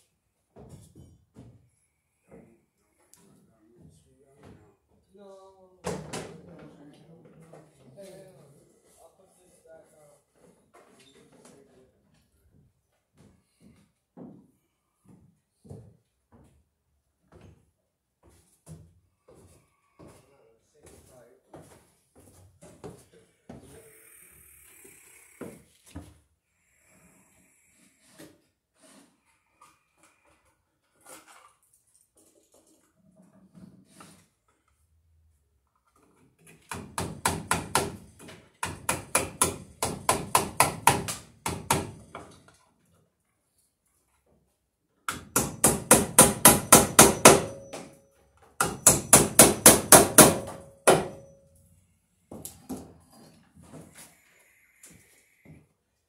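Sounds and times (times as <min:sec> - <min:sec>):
hammer driving nails into wood: 0:36.6 - 0:42.4, 0:45.1 - 0:48.0, 0:48.6 - 0:51.3.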